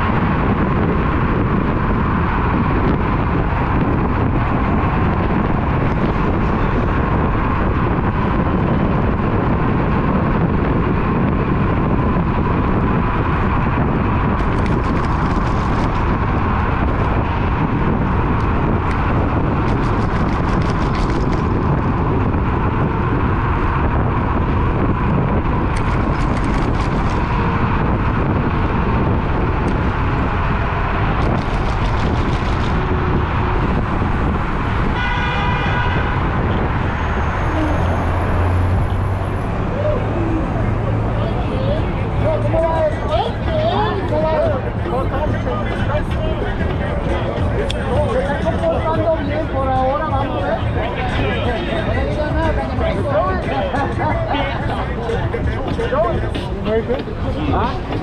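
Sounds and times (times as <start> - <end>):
wind and road noise: 0.0 - 58.0.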